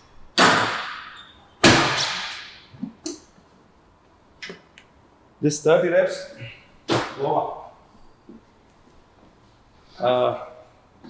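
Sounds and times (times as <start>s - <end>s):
loud sharp hits: 0.4s - 2.7s, 6.8s - 7.4s.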